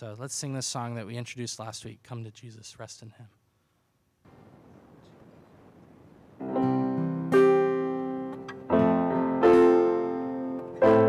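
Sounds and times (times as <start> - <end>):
faint hiss: 0.0 - 6.7
electric piano chords: 6.3 - 11.0.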